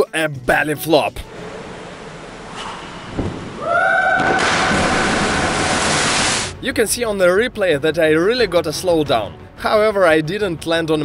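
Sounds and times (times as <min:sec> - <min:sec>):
loud rush of air: 0:01.3 - 0:06.6.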